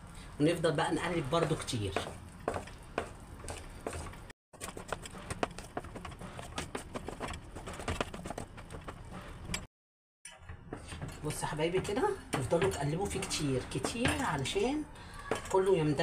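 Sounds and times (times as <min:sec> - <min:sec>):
paste stirred in metal bowl: 0:04.6 - 0:09.5.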